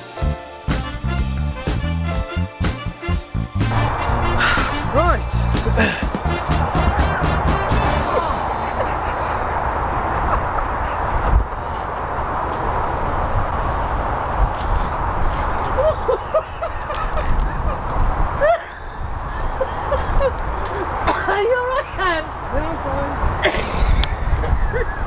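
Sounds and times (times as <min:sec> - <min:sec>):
geese honking: 0:03.6 - 0:09.4
wind rumbling on microphone: 0:03.6 - 0:25.0.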